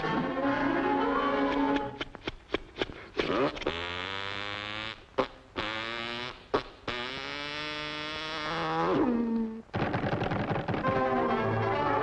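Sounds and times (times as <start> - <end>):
brass chord cartoon music: 10.9 - 12.0.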